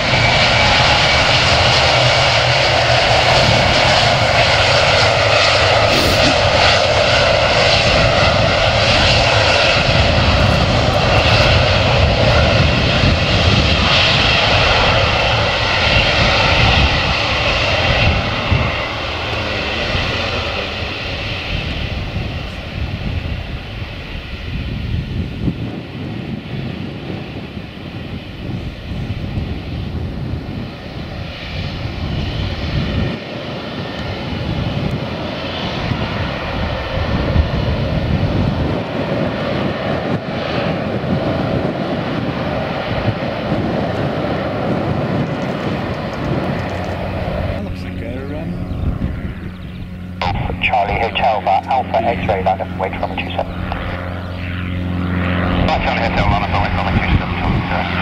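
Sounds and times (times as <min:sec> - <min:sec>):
jet engines at taxi power: 0:00.0 - 0:58.0.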